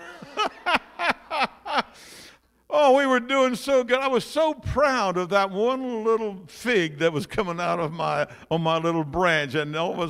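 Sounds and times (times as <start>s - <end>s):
background laughing: 0.0s - 2.0s.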